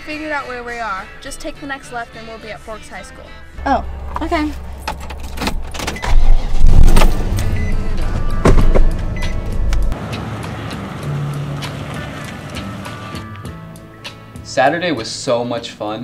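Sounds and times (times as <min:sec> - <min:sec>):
background music: 0:00.0 - 0:16.0
pickup engine starting and running: 0:03.6 - 0:14.4.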